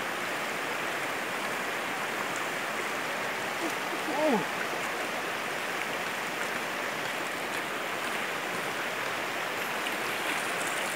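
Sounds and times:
river water rushing: 0.0 - 10.9.

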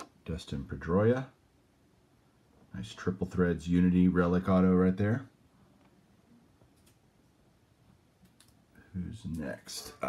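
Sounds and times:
faint clicks: 6.6 - 7.0, 8.2 - 8.6.

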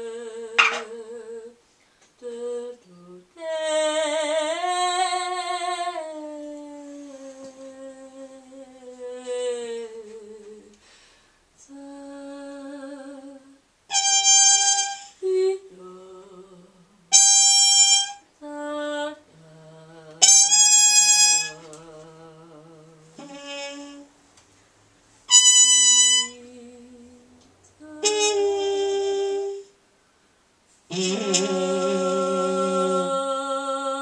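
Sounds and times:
wordless female voice singing: 0.0 - 10.9, 11.6 - 24.2, 26.2 - 29.8, 30.9 - 34.0
trumpet blasts: 0.6 - 1.0, 13.9 - 15.2, 17.1 - 18.3, 20.2 - 21.7, 23.2 - 24.1, 25.3 - 26.4, 28.0 - 29.7, 30.9 - 33.0.

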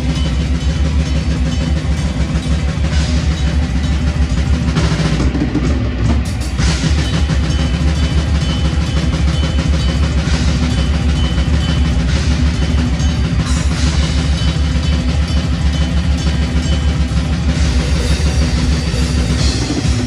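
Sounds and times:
bass guitar: 0.0 - 20.0
fast dense drumming: 0.0 - 20.0.

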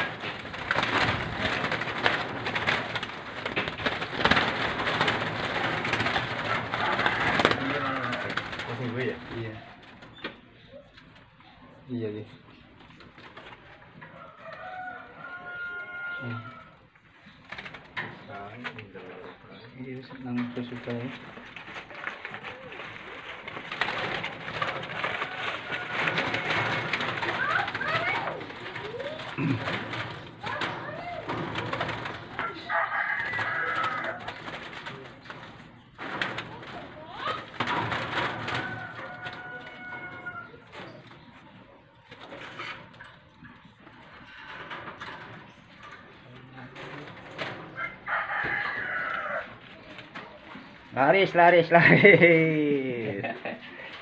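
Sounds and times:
doves cooing: 0.0 - 54.0.

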